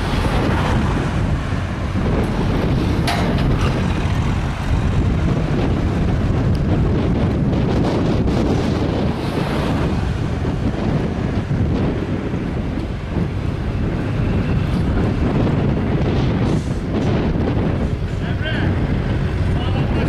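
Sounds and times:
vehicle road noise rumble: 0.0 - 20.0
wind buffeting microphone: 0.0 - 20.0.

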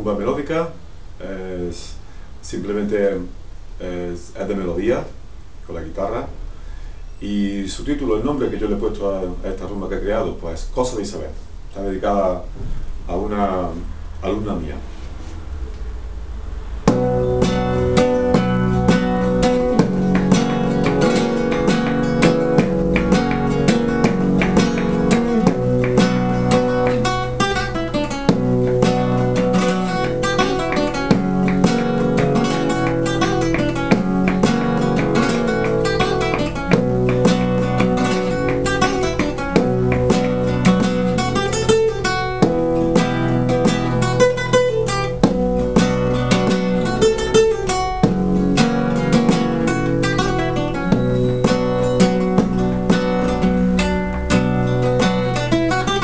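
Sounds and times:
flamenco guitar playing rumba: 16.7 - 56.0.

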